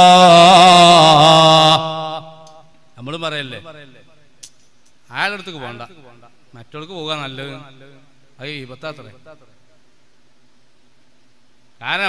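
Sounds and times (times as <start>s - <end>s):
man chanting through loudspeakers: 0.0s - 4.1s, 5.1s - 9.4s.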